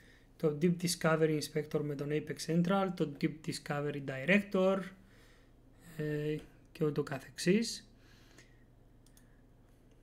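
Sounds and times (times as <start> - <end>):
low electrical hum: 0.0 - 10.0
computer mouse clicks: 8.4 - 10.0.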